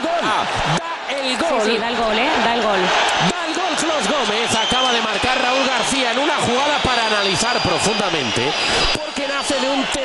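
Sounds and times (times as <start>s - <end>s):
men talking: 0.0s - 10.0s
stadium crowd noise: 0.0s - 10.0s.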